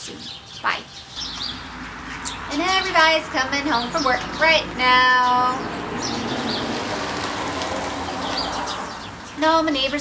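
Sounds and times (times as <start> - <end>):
bird chirps: 0.0 - 6.7
car passing with tyre hiss: 5.6 - 9.3.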